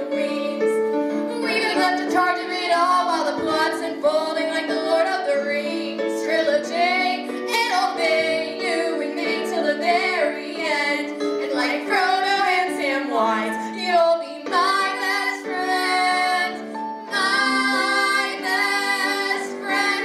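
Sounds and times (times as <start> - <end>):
held accompaniment chords: 0.0 - 20.0
young women singing a duet: 0.0 - 20.0.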